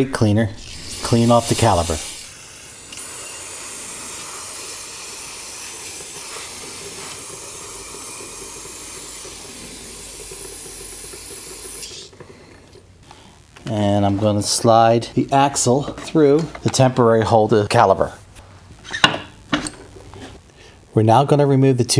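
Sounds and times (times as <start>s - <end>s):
aerosol spray hissing: 0.5s - 12.5s.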